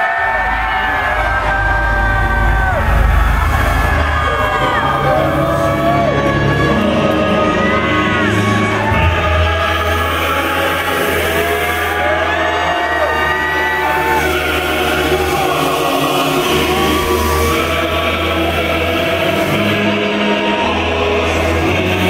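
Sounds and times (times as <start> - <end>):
crowd shouting: 0.0 - 22.0
gliding synth tones: 0.0 - 22.0
low bass drone: 0.0 - 22.0.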